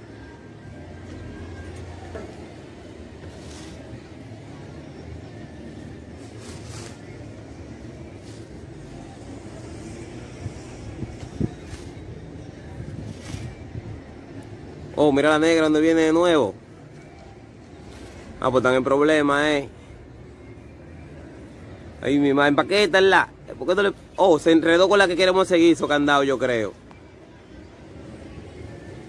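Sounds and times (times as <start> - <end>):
distant traffic rumble: 0.0 - 29.0.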